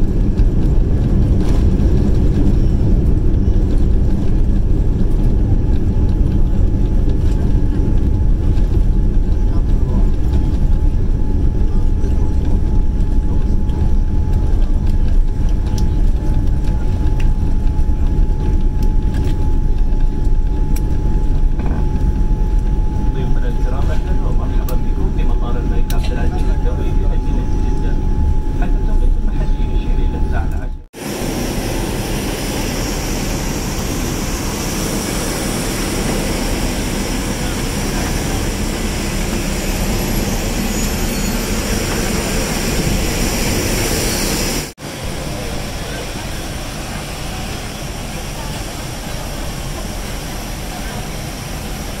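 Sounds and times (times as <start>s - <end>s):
jet and ground equipment noise: 0.0s - 52.0s
jet cabin rumble and whine: 0.0s - 52.0s.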